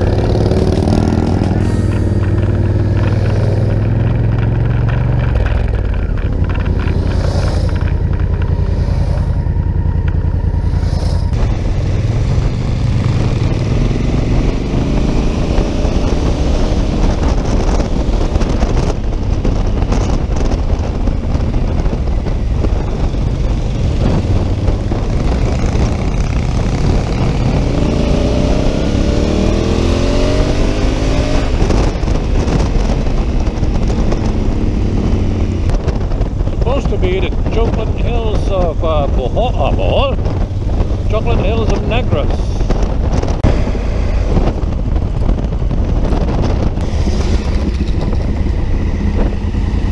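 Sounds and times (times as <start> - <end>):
motorcycle engine running: 0.0 - 49.9
wind noise: 0.0 - 49.9.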